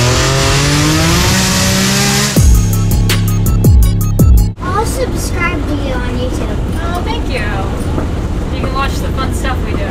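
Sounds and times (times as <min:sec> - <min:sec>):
car engine rumble: 0:00.0 - 0:09.9.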